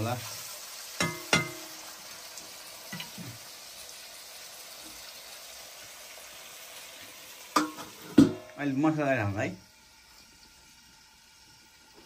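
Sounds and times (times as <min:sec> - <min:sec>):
potatoes sizzling in oil: 0:00.0 - 0:12.0
spoon knocking against pan: 0:01.0 - 0:01.8, 0:07.6 - 0:08.5.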